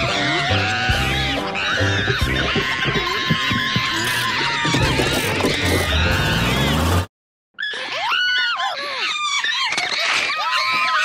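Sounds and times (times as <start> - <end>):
chimp-like screeching and chattering: 0.0 - 6.8, 7.6 - 11.0.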